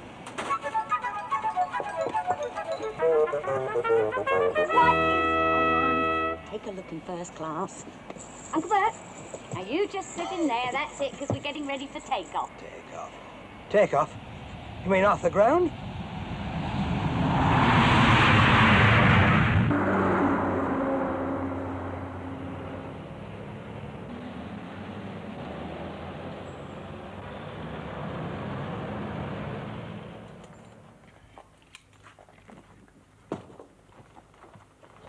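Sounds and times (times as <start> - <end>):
jet engines roaring: 14.0 - 27.2.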